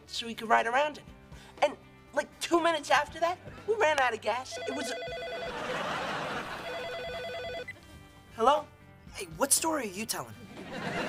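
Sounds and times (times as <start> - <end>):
telephone ringing: 4.5 - 7.8.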